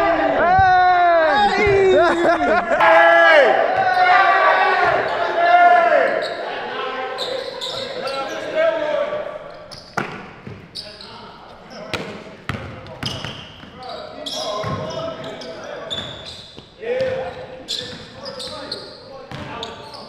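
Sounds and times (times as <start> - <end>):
men shouting: 0.0 - 7.2.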